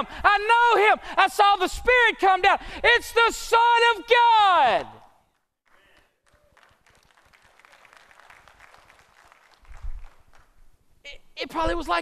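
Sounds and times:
faint applause: 5.7s - 10.6s.

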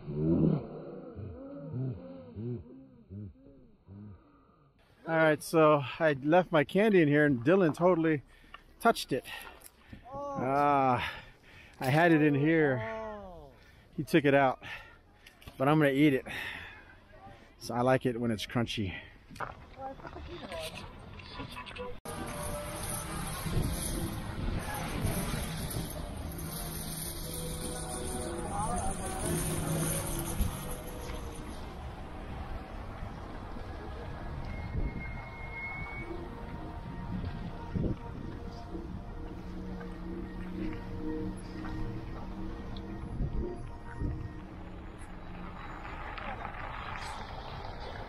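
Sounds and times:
car driving on wet street: 22.1s - 48.0s.

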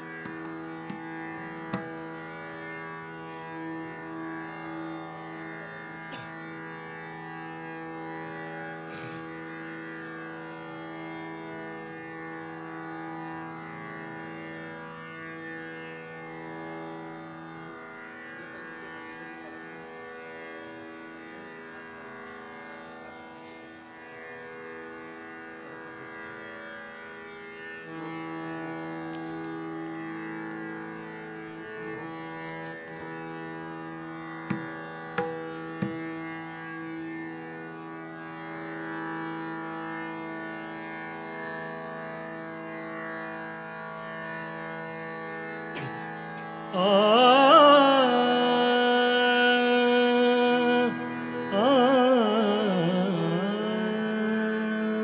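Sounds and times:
tanpura drone: 0.0s - 55.0s
sharp knocks: 0.2s - 2.0s, 34.5s - 36.2s.

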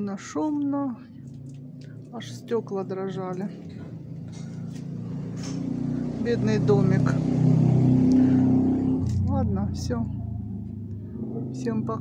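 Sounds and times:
vehicle engine rumble approaching: 0.0s - 12.0s.

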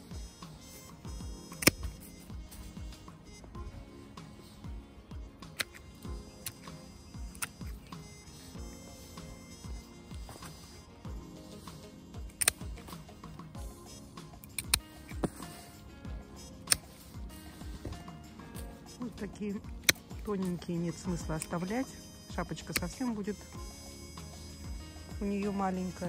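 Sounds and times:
background music: 0.0s - 26.0s
pruning shears snipping stems: 1.5s - 2.2s, 5.4s - 8.2s, 11.6s - 13.5s, 14.3s - 15.6s, 16.6s - 23.3s.

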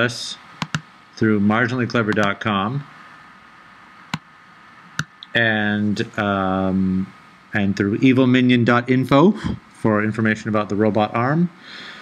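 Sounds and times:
faint steady hiss: 0.0s - 12.0s
computer mouse clicks: 0.6s - 0.9s, 2.1s - 2.4s.

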